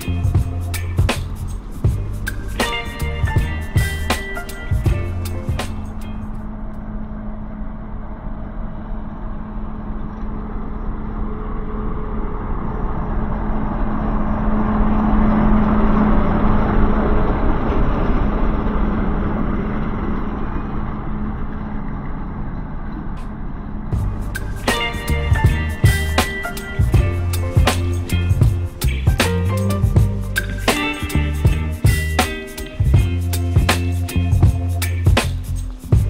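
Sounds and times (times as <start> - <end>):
diesel locomotive passing: 0.0 - 36.0.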